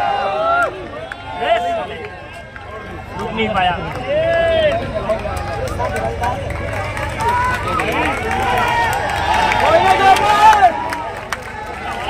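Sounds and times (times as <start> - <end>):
spectators talking: 0.0 - 12.0
stadium crowd noise: 0.0 - 12.0.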